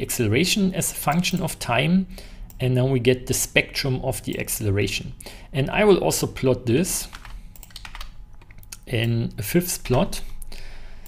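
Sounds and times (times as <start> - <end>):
keyboard typing: 7.1 - 8.8.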